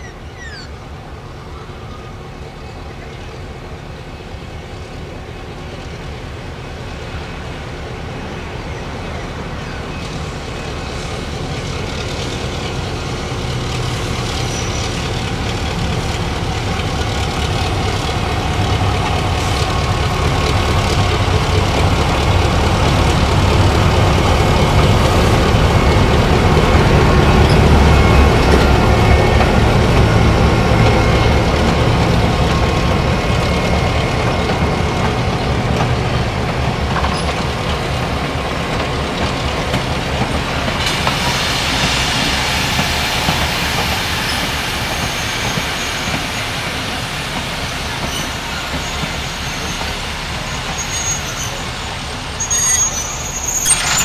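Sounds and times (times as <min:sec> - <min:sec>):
diesel locomotive rumble: 0:00.0 - 0:54.0
train wheels on rails: 0:00.0 - 0:54.0
hissing rail sound: 0:07.0 - 0:54.0.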